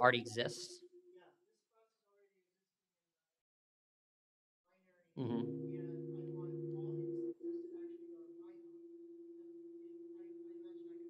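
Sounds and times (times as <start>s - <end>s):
distant voice talking: 5.2s - 8.7s
steady hum: 5.2s - 11.0s.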